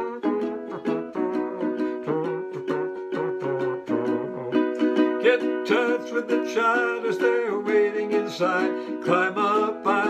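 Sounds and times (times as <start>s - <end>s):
ukulele strumming: 0.0s - 10.0s.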